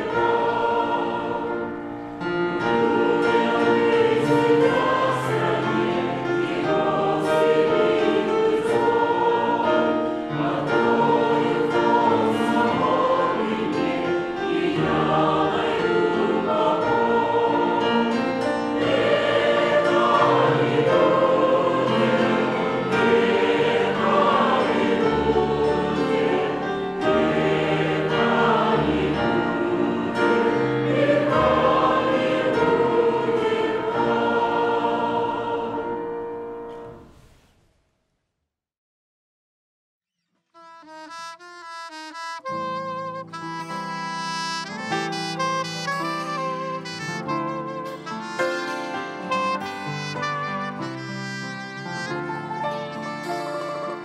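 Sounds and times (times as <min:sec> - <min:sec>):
group singing a hymn: 0:00.0 - 0:36.9.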